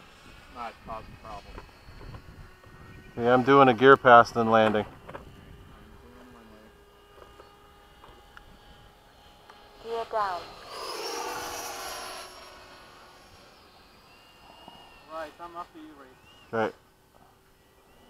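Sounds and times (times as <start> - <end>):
model jet fan whine passing: 0.0 - 18.0.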